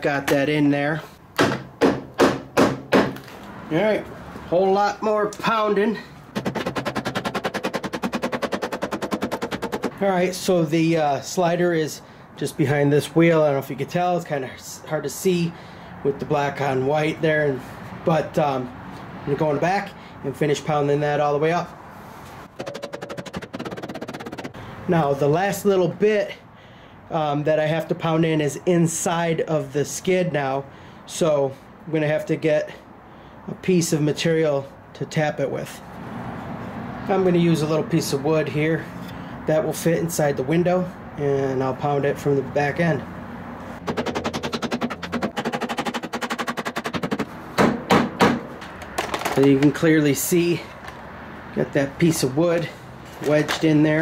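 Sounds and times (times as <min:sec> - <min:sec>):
hammer tapping wood block: 0:01.4 - 0:03.2
heavy hammer knocks: 0:01.4 - 0:03.2, 0:47.6 - 0:48.5
sharp knocks on metal rail: 0:01.4 - 0:03.2, 0:43.9 - 0:48.7.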